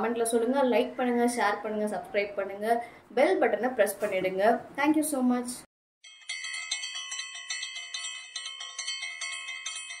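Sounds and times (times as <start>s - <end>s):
bright bell-like chimes: 6.0s - 10.0s.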